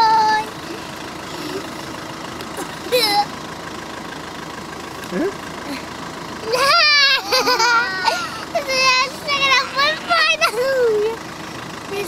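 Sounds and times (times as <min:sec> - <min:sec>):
child squealing: 0:06.5 - 0:10.9.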